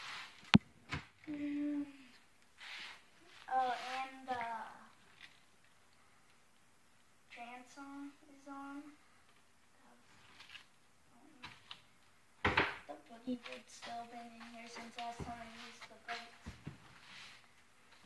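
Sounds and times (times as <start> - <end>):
person humming: 1.3 - 2.1.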